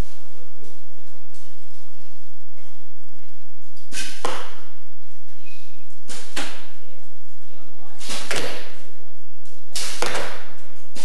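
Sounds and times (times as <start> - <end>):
arrows shot from bows: 3.8 - 4.7, 8.0 - 8.8, 9.7 - 11.0.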